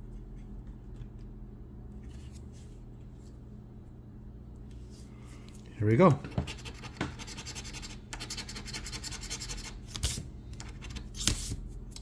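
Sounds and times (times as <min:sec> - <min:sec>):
coin scratching lottery ticket: 0:06.5 - 0:09.8.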